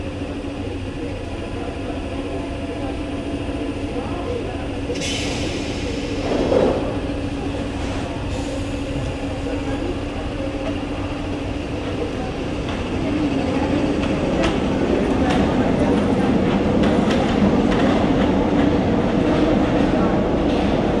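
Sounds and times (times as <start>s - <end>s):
train motor hum: 0.0s - 21.0s
train rumble: 0.0s - 21.0s.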